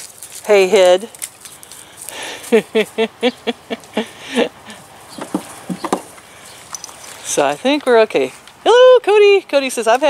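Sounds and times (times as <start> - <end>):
goats calling: 3.3 - 7.2.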